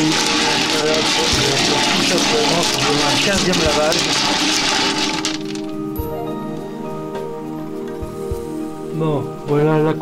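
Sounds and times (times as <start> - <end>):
tap water running over gravel: 0.0 - 5.8
music: 0.0 - 10.0.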